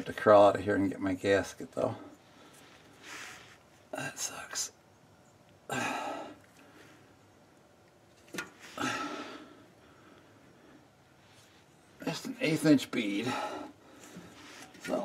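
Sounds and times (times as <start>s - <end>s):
man muttering: 5.7s - 6.4s
breathy exhales: 8.6s - 10.4s.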